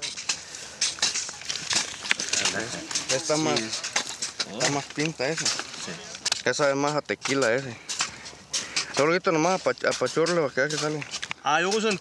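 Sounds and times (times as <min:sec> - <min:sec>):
person speaking: 0:02.2 - 0:07.8.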